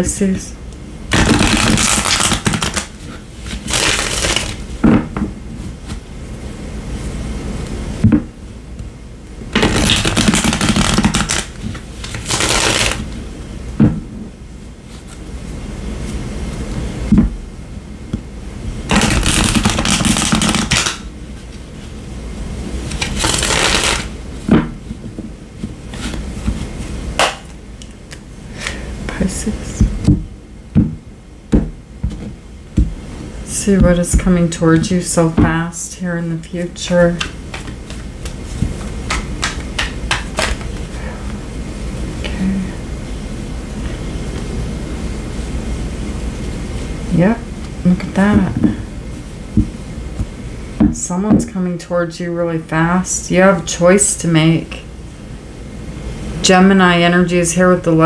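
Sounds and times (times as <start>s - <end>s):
cards riffle-shuffled: 1.1s - 4.6s, 9.6s - 13.0s, 18.9s - 21.0s, 22.9s - 24.1s, 36.9s - 40.9s.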